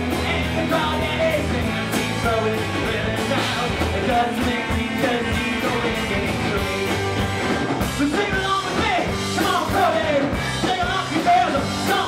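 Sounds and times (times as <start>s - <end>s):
electric guitars: 0.0s - 12.0s
person singing: 0.0s - 12.0s
steady drum beat: 0.0s - 12.0s.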